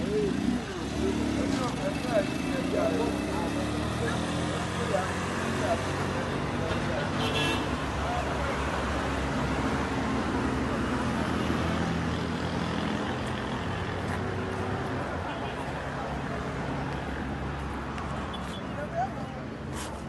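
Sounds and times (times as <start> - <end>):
highway traffic noise: 0.0 - 20.0.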